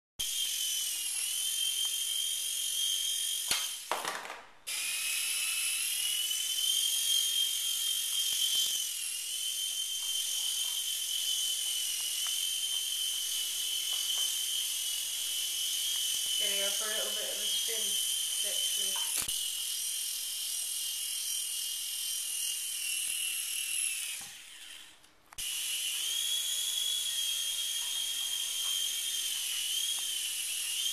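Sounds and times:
toy helicopter rotor whining: 0.2 - 4.1, 4.7 - 30.9.

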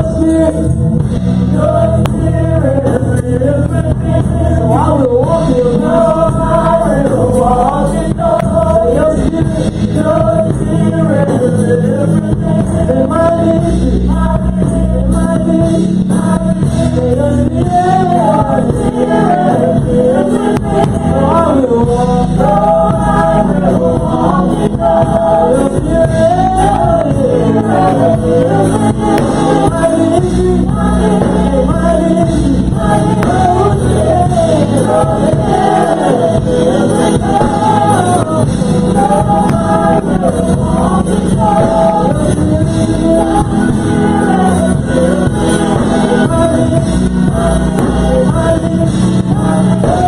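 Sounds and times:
gospel choir singing: 0.0 - 50.0.

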